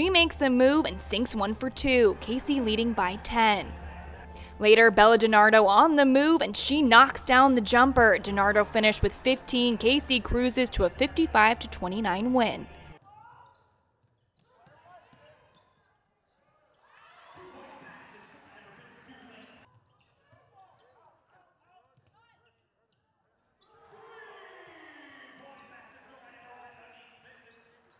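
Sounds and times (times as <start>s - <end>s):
voices: 0.0s - 12.9s.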